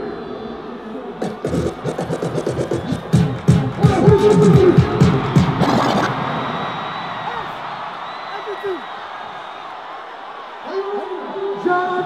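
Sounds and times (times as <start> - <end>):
record scratching: 1.2 - 4.8, 5.4 - 6.3
loud music: 1.2 - 7.6.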